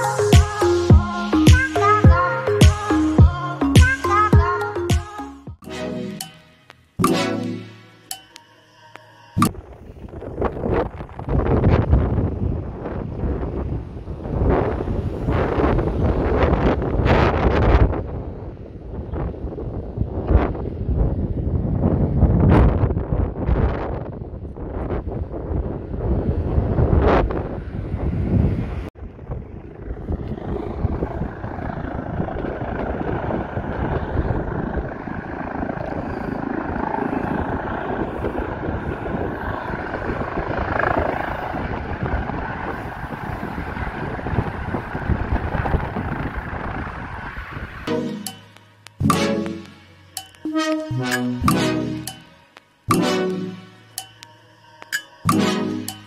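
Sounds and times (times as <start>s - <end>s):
helicopter drone with high whine: 0.0s - 5.6s, 24.0s - 52.3s, 52.9s - 56.0s
wind buffeting microphone: 9.4s - 47.9s.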